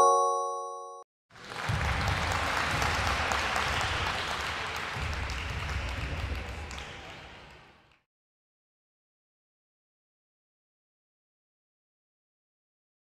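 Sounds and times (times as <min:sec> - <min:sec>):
crowd applause: 0:01.3 - 0:08.0.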